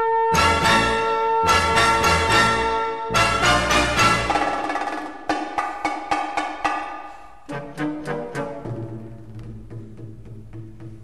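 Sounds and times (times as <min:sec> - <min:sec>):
orchestral music: 0:00.0 - 0:05.0, 0:07.4 - 0:10.6.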